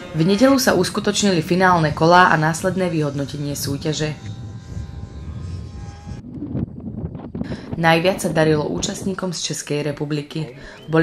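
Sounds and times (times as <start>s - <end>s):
faint steady whine: 0.0s - 9.5s
wind rumbling on microphone: 0.6s - 10.5s.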